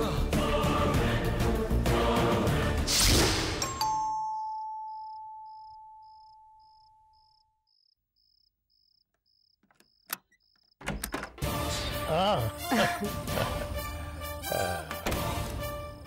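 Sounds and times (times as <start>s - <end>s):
background music: 0.0s - 4.2s, 11.4s - 16.0s.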